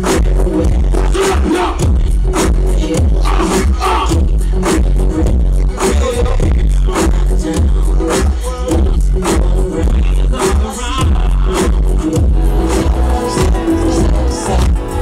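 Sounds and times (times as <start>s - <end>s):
live r and b music: 0.0s - 15.0s.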